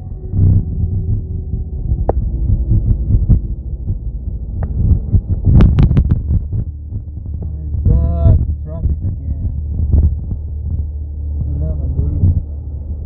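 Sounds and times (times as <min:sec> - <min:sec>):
car cabin rumble: 0:00.0 - 0:13.0.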